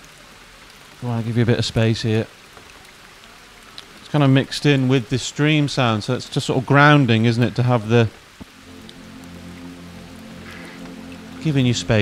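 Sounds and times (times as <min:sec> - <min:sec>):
even hiss: 0:03.7 - 0:12.0
ambient music with low notes: 0:08.4 - 0:12.0.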